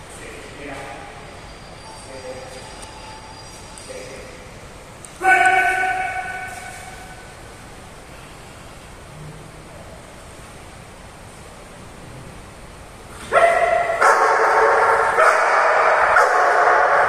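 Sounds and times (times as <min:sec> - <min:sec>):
man calling a held note: 0:05.2 - 0:07.1.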